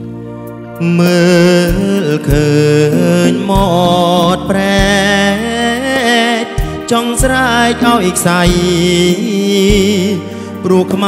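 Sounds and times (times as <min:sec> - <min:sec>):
band with bass and keyboard: 0:00.0 - 0:11.0
man singing with vibrato: 0:00.7 - 0:11.0
low drum beat: 0:01.1 - 0:10.2.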